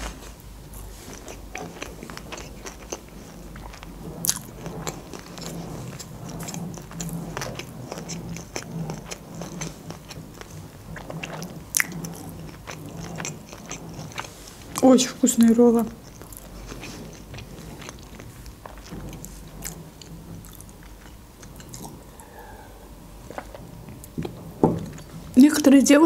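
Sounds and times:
person chewing food: 0:00.0 - 0:14.9, 0:15.9 - 0:25.2.

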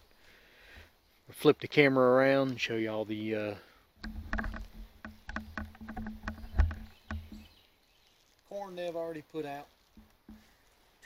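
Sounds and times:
camera handling rumble: 0:04.0 - 0:07.5
footsteps crunching through dry leaves: 0:07.3 - 0:11.0.

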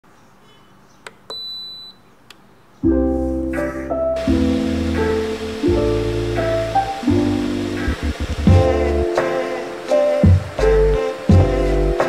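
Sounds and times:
kettle high beep: 0:01.3 - 0:02.0.

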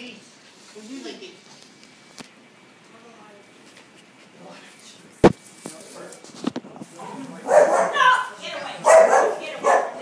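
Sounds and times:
dog barking: 0:07.4 - 0:10.0.

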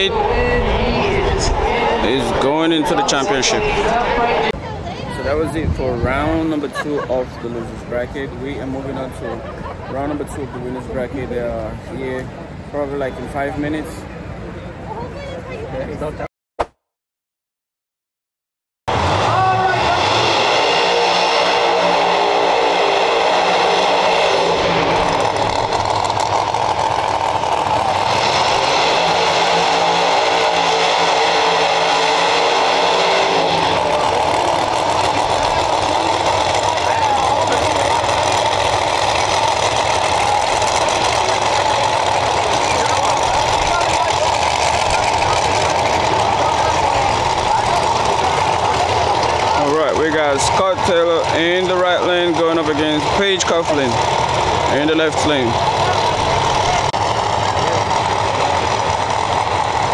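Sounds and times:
race car engines idling: 0:18.9 - 0:59.9.

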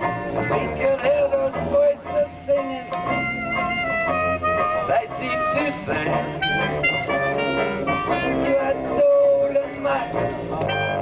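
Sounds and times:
jazz band playing: 0:00.0 - 0:11.0
man singing: 0:00.4 - 0:03.2, 0:04.7 - 0:06.7, 0:07.8 - 0:11.0.

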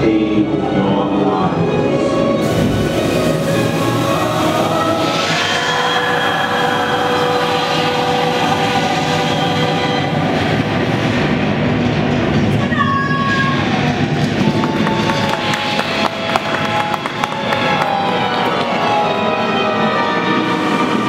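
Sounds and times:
ominous sustained chords: 0:00.0 - 0:12.6
low rumble: 0:02.4 - 0:18.5.

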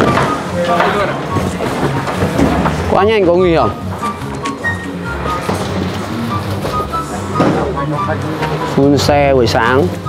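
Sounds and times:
background music melody: 0:00.0 - 0:10.0.

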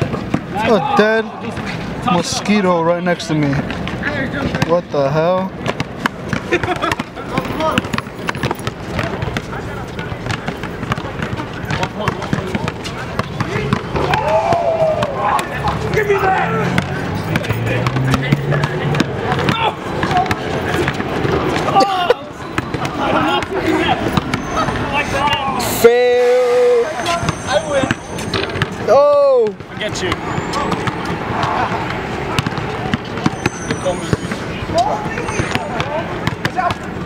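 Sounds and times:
basketball bouncing: 0:00.0 - 0:00.7, 0:03.5 - 0:25.5, 0:27.1 - 0:37.0
people shouting: 0:00.5 - 0:01.5, 0:13.4 - 0:16.9, 0:17.8 - 0:28.3, 0:28.9 - 0:34.0
steady pitched tone: 0:25.7 - 0:28.6.

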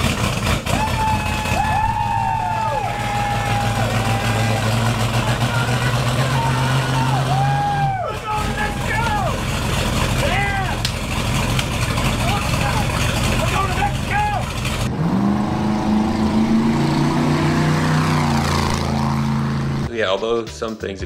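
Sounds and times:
truck engine running: 0:00.0 - 0:19.9
vehicle engine rising in pitch: 0:00.0 - 0:19.9
men whooping and shouting: 0:00.7 - 0:09.4, 0:10.2 - 0:10.8, 0:12.2 - 0:14.5.

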